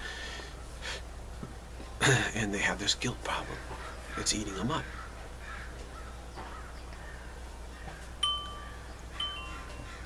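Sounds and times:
wind chime ringing: 0:08.2 - 0:10.0.

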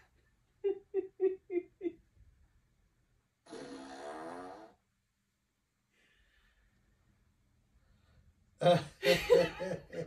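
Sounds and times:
long buzzy fart: 0:03.4 - 0:04.8.

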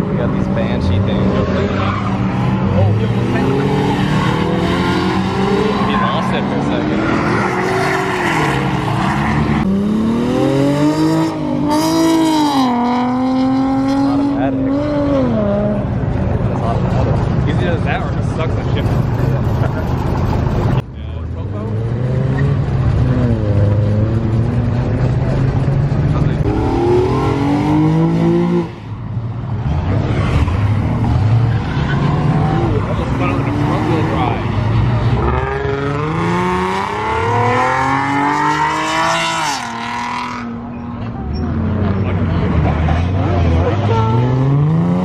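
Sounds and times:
car engines revving: 0:00.0 - 0:45.0.

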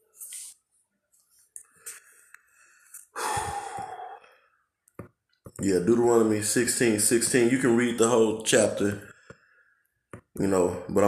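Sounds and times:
man sighing: 0:03.2 - 0:04.3.

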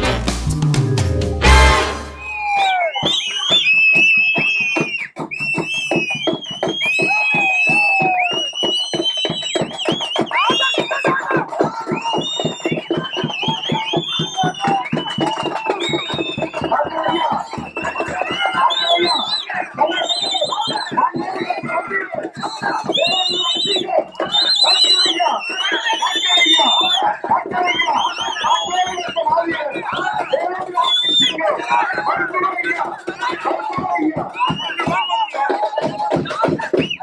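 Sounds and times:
fast drumming: 0:00.0 - 0:37.0
crowd voices: 0:00.8 - 0:03.5, 0:10.3 - 0:37.0.

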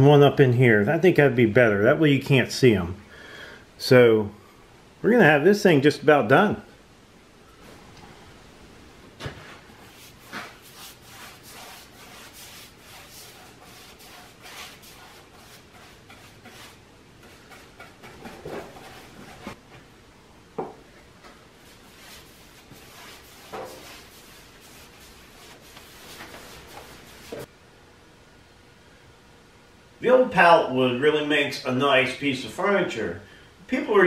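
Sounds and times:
brush rubbing on rough wood: 0:09.8 - 0:19.6, 0:21.6 - 0:27.5.

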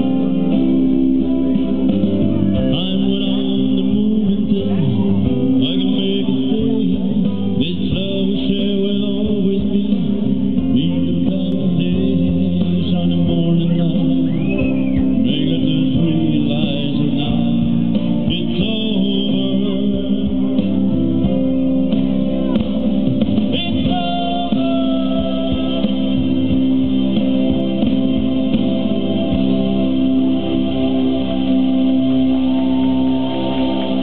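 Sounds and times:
guitar over held chords: 0:00.0 - 0:34.0.

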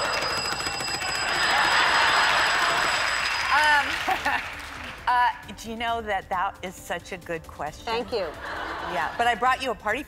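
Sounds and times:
electronic alarm ringing: 0:00.0 - 0:03.9.

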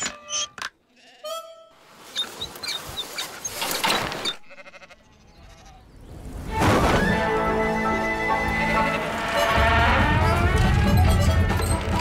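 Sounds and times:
sheep bleat: 0:00.9 - 0:01.7, 0:04.4 - 0:05.9
cartoon music: 0:07.1 - 0:12.0.

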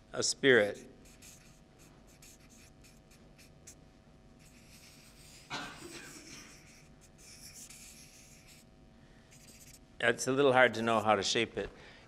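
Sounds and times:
marker scratching on paper: 0:00.6 - 0:03.8, 0:04.4 - 0:08.7, 0:09.3 - 0:09.8.

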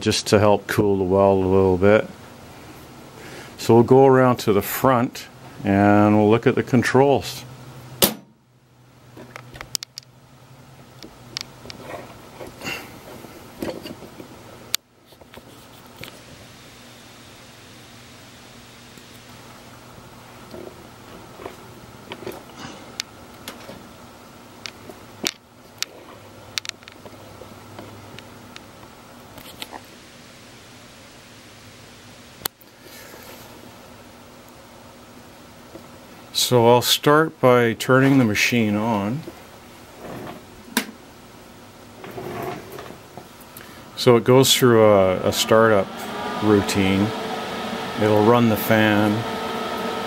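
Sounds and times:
low room tone hum: 0:00.0 - 0:50.0.

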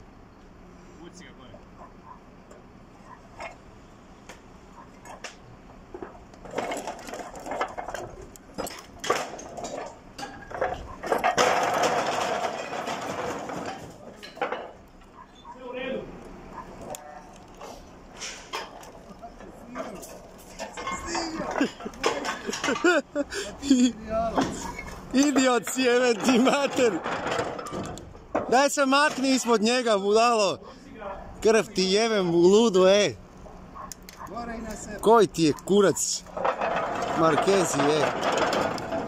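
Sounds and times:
clay roof tiles clattering: 0:05.9 - 0:15.2, 0:16.8 - 0:30.6, 0:34.6 - 0:39.0
metal tank scraping tiles: 0:36.0 - 0:39.0.

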